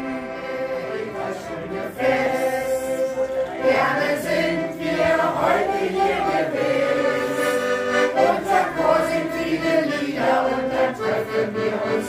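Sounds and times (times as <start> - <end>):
choir singing: 0.0 - 12.0
piano accordion: 0.0 - 12.0.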